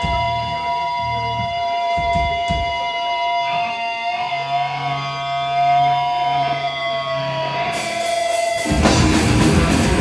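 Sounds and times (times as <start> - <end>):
electric guitar feedback tone: 0.0 - 10.0.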